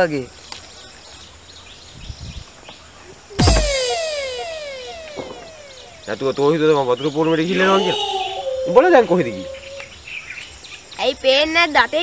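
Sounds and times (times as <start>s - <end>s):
faint dull thump: 3.4s - 6.0s
loud comedic hit: 3.4s - 6.7s
quick falling tones: 3.4s - 9.9s.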